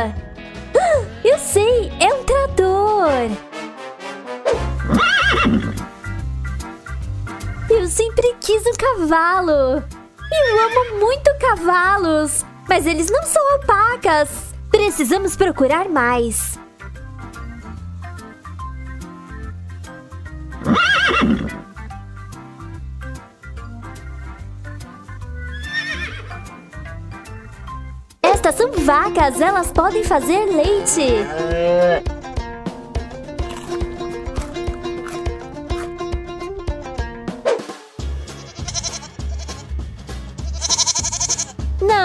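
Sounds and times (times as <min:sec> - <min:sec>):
background music with beat: 0:04.4 - 0:07.7, 0:16.6 - 0:42.0
horse whinnying: 0:04.8 - 0:05.9, 0:10.2 - 0:11.0, 0:20.6 - 0:21.7, 0:25.5 - 0:26.3, 0:31.2 - 0:32.0, 0:40.5 - 0:41.5
goat bleating: 0:30.7 - 0:32.1, 0:38.4 - 0:39.7, 0:40.4 - 0:41.6.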